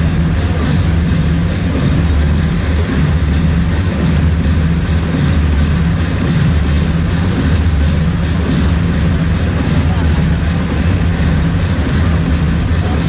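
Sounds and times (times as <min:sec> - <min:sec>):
loud music with heavy bass: 0:00.0 - 0:13.0.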